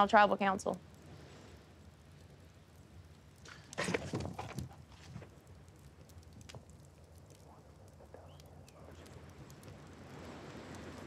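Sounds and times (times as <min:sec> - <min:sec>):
torch flames crackling: 0:00.0 - 0:11.0
people whispering: 0:07.4 - 0:09.3.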